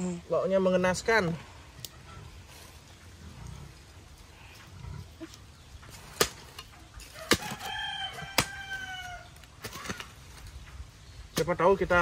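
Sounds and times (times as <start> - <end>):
rooster crowing: 7.1 - 9.3.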